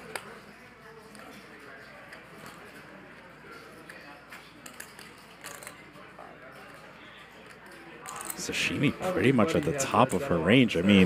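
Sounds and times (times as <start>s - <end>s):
faint indistinct talk: 0.0s - 11.0s.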